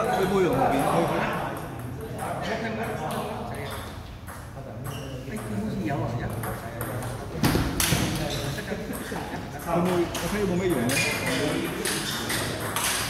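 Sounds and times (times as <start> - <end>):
ping-pong ball hits: 0.4 - 13.0.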